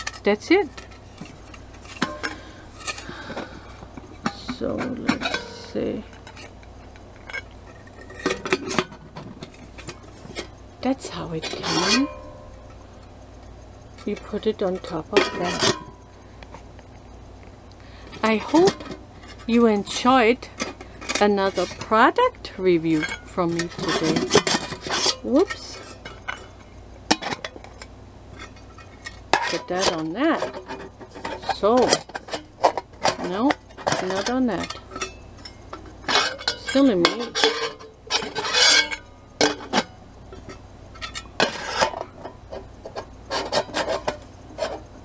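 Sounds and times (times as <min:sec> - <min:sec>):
metal pots clinking together: 0:00.0 - 0:03.5, 0:04.1 - 0:10.6, 0:11.4 - 0:12.8, 0:14.2 - 0:16.0, 0:22.9 - 0:44.8
faint hum: 0:00.0 - 0:45.0
metal pot ringing: 0:01.8 - 0:03.0, 0:11.0 - 0:13.0, 0:33.3 - 0:42.4.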